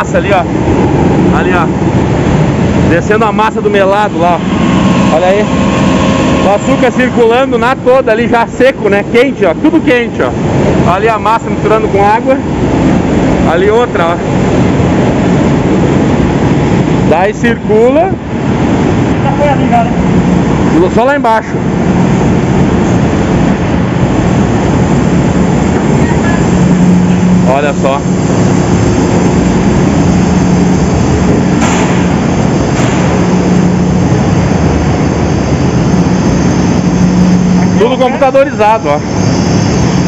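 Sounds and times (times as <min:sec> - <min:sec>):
constant low hum: 0:00.0 - 0:40.0
machinery low rumble with hiss: 0:00.0 - 0:40.0.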